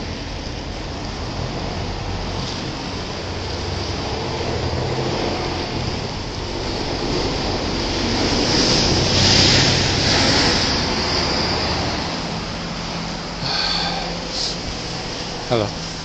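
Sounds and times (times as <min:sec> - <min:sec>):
car passing close: 0:00.0 - 0:16.0
traffic rumble: 0:00.0 - 0:16.0.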